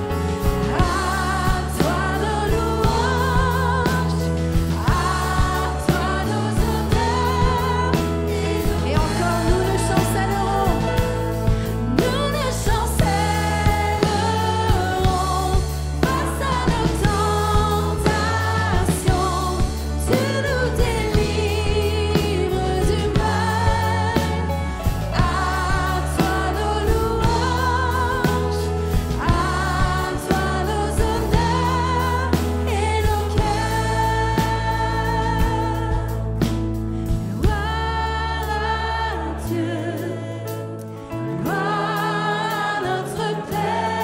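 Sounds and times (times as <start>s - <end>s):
bass line: 0.0s - 44.0s
keyboard accompaniment: 0.0s - 44.0s
woman singing worship song: 0.0s - 44.0s.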